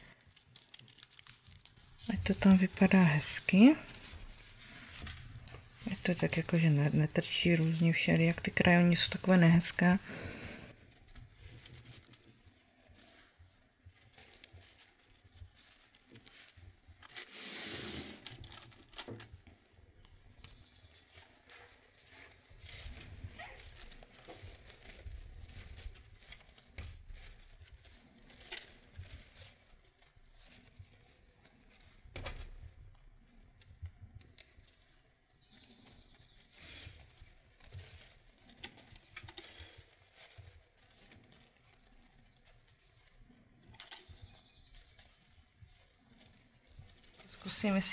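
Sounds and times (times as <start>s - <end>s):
lace rustling and crinkling: 0.0s - 47.9s.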